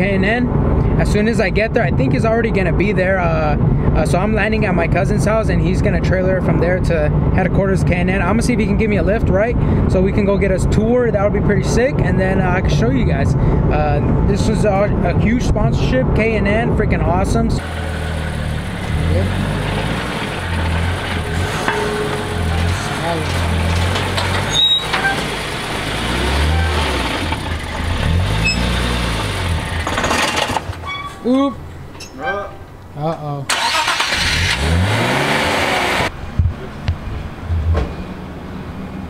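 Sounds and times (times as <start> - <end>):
truck engine rumble: 0.0 - 39.0
tow truck engine hum: 17.2 - 32.0
thuds and clanks from truck bed: 19.7 - 25.4, 29.8 - 30.9, 37.6 - 38.0.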